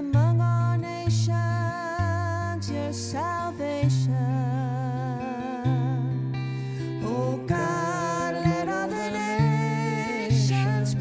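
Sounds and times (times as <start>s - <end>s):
woman singing with vibrato: 0.0s - 6.2s, 7.0s - 11.0s
acoustic guitar: 0.0s - 11.0s.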